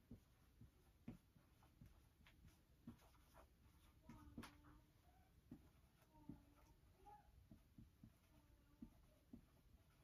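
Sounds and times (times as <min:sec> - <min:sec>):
marker writing on whiteboard: 0:00.0 - 0:10.0.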